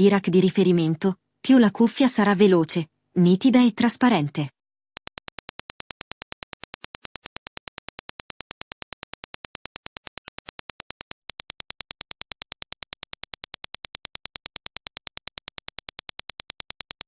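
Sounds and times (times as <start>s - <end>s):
sharp test clicks: 5.0s - 17.0s.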